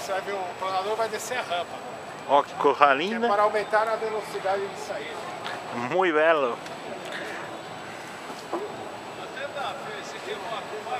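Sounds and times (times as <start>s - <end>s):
background hiss: 0.0s - 10.9s
faint voices: 0.0s - 10.9s.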